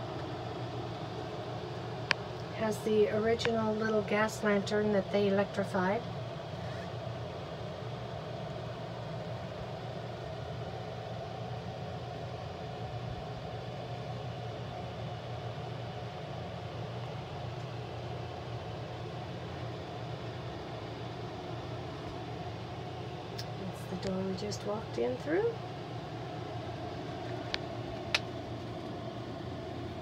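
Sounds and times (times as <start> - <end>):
low mechanical hum: 0.0 - 30.0.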